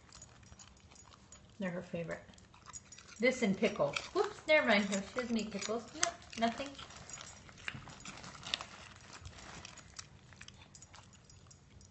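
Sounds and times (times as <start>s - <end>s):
dog crunching a carrot: 0.0s - 11.9s.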